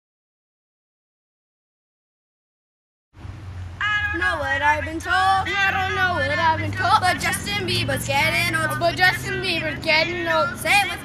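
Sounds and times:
low steady hum: 0:03.2 - 0:11.0.

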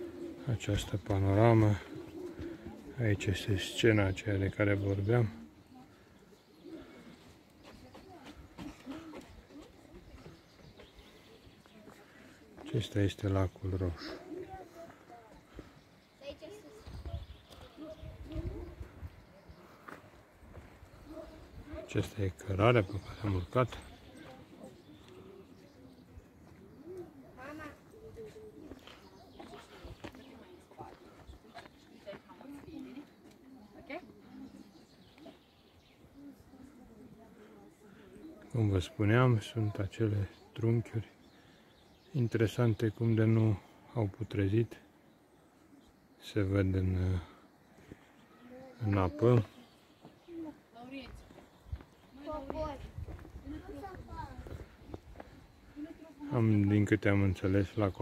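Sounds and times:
distant people talking: 0:00.0 - 0:44.0
people talking: 0:52.2 - 0:58.0.

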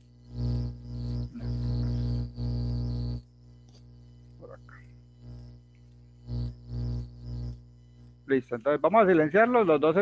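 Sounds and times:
steady low buzz: 0:00.0 - 0:10.0.

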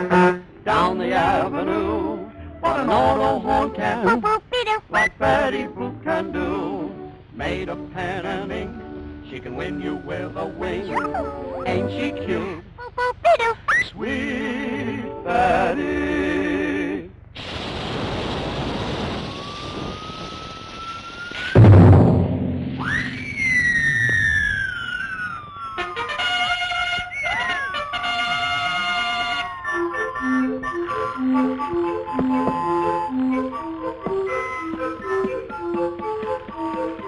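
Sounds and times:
rocket hiss with rising whistle: 0:17.4 - 0:21.7, 0:22.8 - 0:25.7
loud bang: 0:17.4 - 0:25.3
falling sliding whistle tones: 0:19.2 - 0:21.7, 0:22.8 - 0:28.1
brassy band tune: 0:25.8 - 0:35.4.

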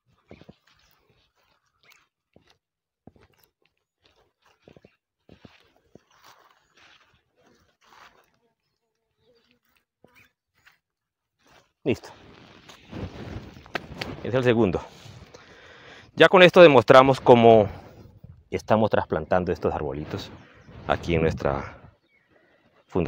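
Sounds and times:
hands scraping soil and leaves: 0:00.0 - 0:15.6, 0:16.2 - 0:18.4, 0:19.1 - 0:22.1.

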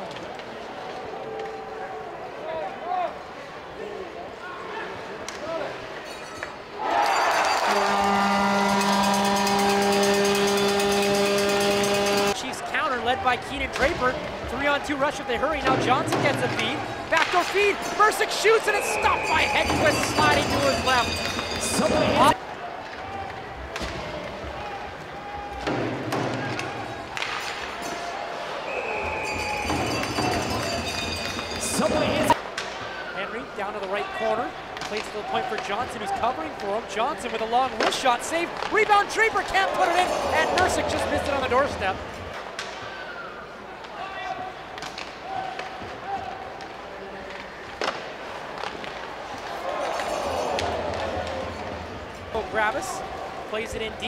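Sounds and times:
hockey sticks knocking puck: 0:15.6 - 0:21.6, 0:34.7 - 0:41.6, 0:44.8 - 0:51.9.

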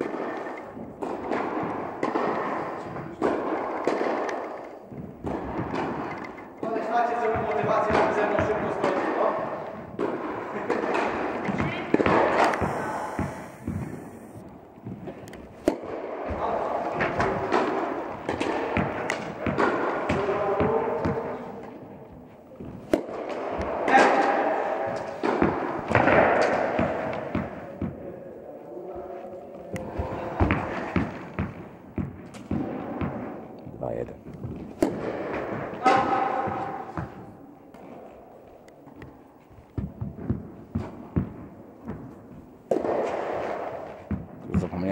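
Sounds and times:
tennis ball struck by rackets: 0:00.9 - 0:06.1, 0:09.9 - 0:14.4, 0:22.8 - 0:27.9, 0:34.5 - 0:37.2
people talking: 0:06.6 - 0:09.5, 0:10.6 - 0:14.4, 0:33.8 - 0:34.2, 0:44.5 - 0:44.9
ball bouncing on court: 0:07.2 - 0:09.1, 0:09.9 - 0:14.2, 0:29.9 - 0:37.3, 0:39.8 - 0:44.8.

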